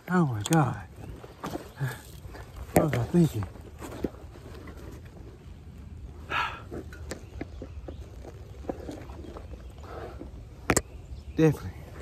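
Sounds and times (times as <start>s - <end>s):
bike clicks and rattles: 6.7s - 11.0s.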